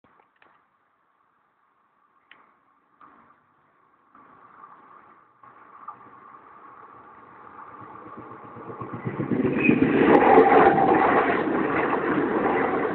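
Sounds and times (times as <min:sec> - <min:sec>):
train passing on rails: 0:03.0 - 0:12.9.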